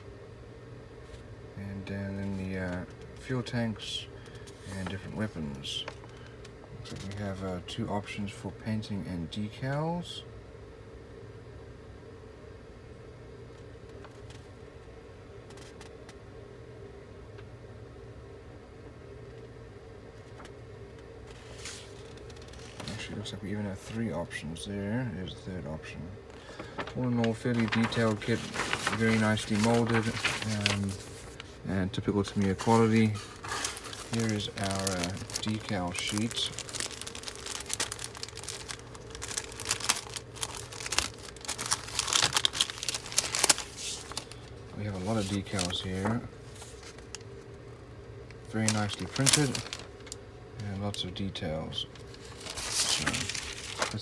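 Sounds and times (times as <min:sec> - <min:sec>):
low background hum: 0:00.0 - 0:54.0
paper rustling: 0:21.3 - 0:23.2, 0:26.3 - 0:47.2, 0:48.6 - 0:50.2, 0:52.0 - 0:54.0
plastic bag crinkling: 0:26.3 - 0:31.6, 0:32.2 - 0:47.3, 0:48.5 - 0:50.2, 0:52.0 - 0:54.0.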